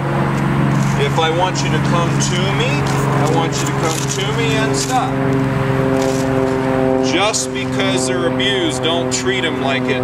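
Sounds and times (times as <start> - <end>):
steady mechanical drone: 0.0 - 10.0.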